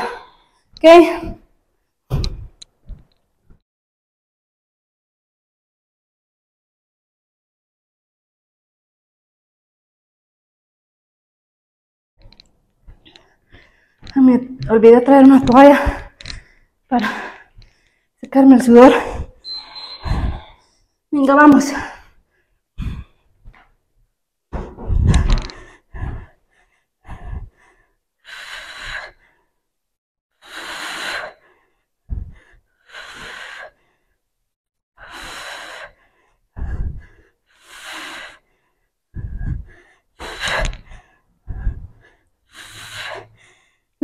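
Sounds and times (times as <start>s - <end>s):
woman breathing hard: 19.0s - 20.8s, 21.9s - 23.6s, 24.6s - 29.6s, 30.4s - 34.2s, 35.0s - 44.0s.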